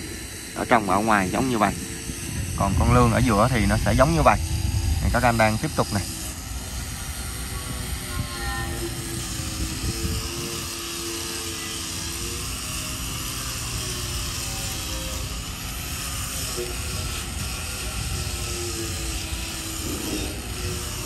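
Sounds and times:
angle grinder grinding steel: 0:00.0 - 0:21.0.

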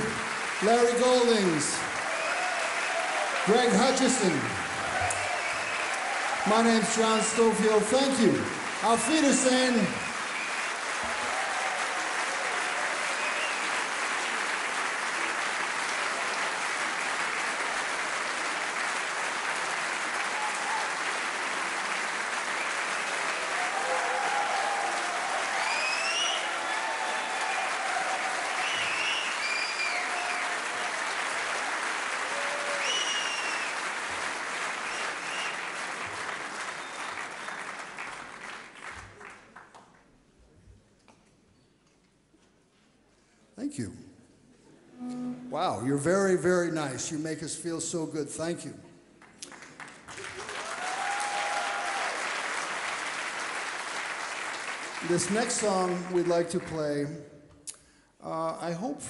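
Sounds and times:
audience applauding: 0:00.0 - 0:40.1, 0:49.2 - 0:57.2
whistles and cheers: 0:02.0 - 0:03.7, 0:04.5 - 0:07.5, 0:09.4 - 0:14.0, 0:20.2 - 0:21.1, 0:22.5 - 0:31.2, 0:32.2 - 0:34.0, 0:34.8 - 0:35.8, 0:36.6 - 0:37.9, 0:50.2 - 0:52.4.

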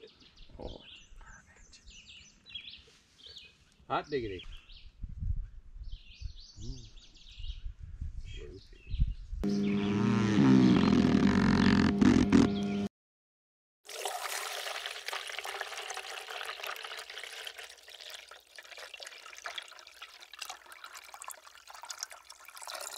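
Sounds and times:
loud steady pitched tone: 0:09.4 - 0:11.1
coffee pouring into mug: 0:13.9 - 0:22.9.

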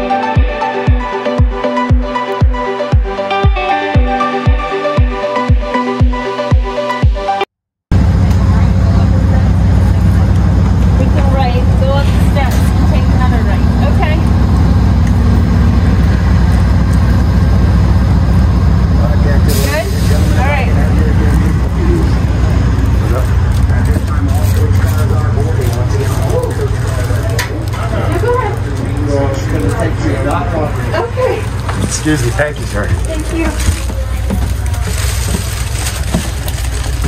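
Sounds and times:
train engines idling: 0:07.9 - 0:37.0
faint voices: 0:08.0 - 0:17.4, 0:18.9 - 0:37.0.

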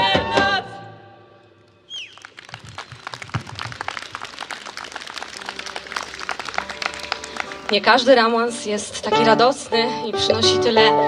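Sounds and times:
falling whistle: 0:01.9 - 0:03.2
audience applauding: 0:01.9 - 0:09.2.

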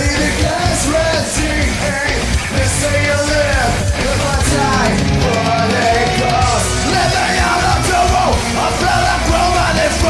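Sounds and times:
heavy metal music: 0:00.0 - 0:10.0.

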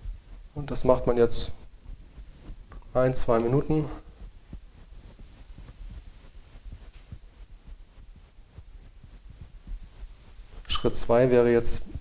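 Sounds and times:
faint low thuds: 0:00.0 - 0:12.0
low steady rumble: 0:00.0 - 0:12.0.

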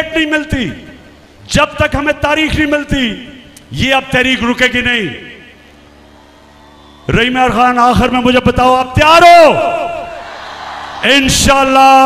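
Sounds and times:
man speaking over public address: 0:00.0 - 0:05.5, 0:07.1 - 0:10.2, 0:11.0 - 0:12.0
faint steady hum: 0:00.0 - 0:12.0.

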